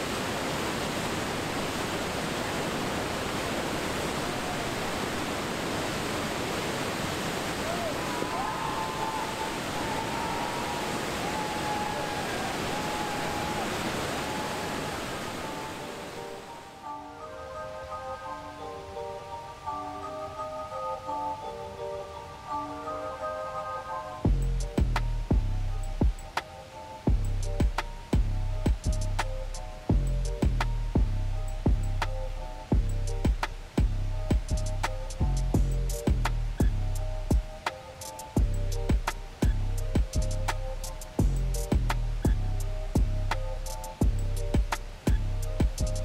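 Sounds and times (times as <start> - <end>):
whitewater roaring through rapid: 0.0 - 16.8
music with repeating melody: 16.2 - 46.0.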